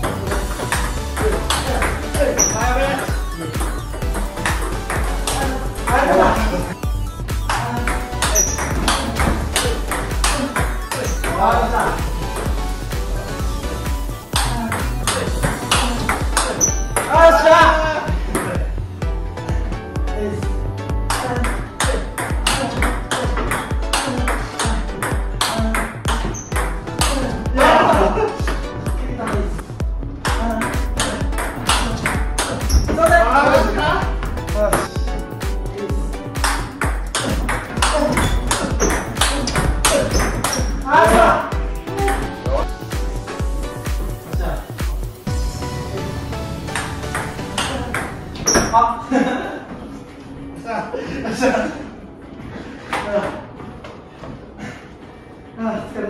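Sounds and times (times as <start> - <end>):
background music: 0.0 - 56.0.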